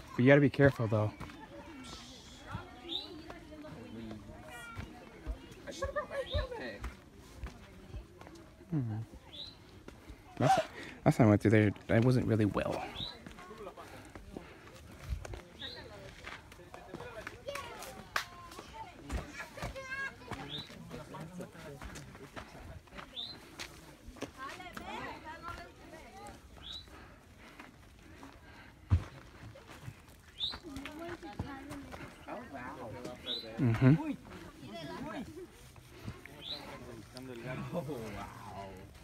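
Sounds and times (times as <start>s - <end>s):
faint indistinct voices: 0.0s - 39.0s.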